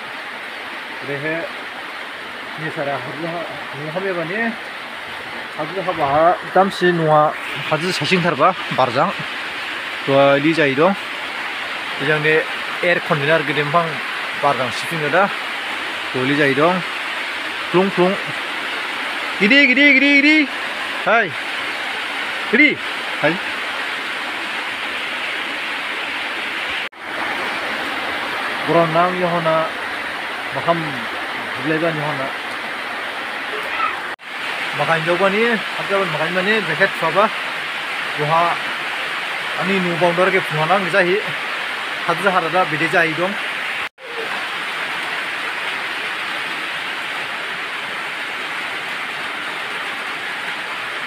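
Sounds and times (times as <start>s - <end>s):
steady rain falling: 0.0s - 51.0s
man's voice: 5.6s - 9.2s, 19.4s - 21.4s.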